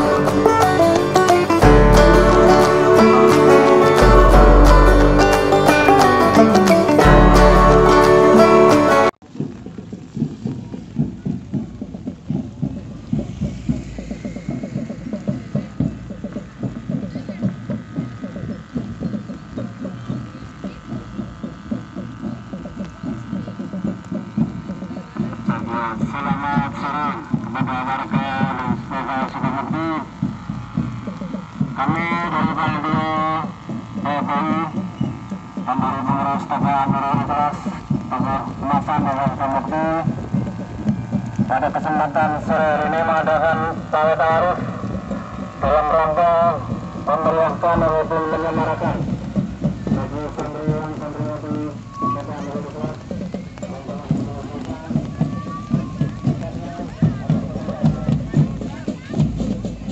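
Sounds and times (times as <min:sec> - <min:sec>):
man announcing over distorted loudspeaker: 0:25.3 - 0:30.3, 0:31.7 - 0:40.4, 0:41.4 - 0:59.1.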